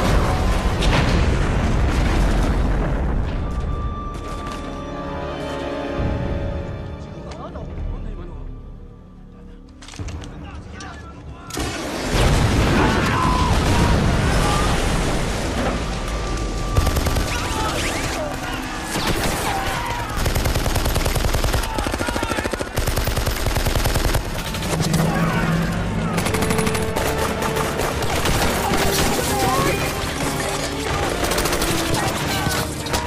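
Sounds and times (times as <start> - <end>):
rifle and machine-gun fire: 16.8 - 24.9, 26.1 - 33.0.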